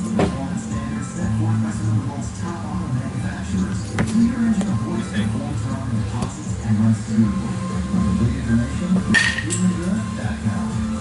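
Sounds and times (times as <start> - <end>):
radio music and talk: 0.0 - 11.0.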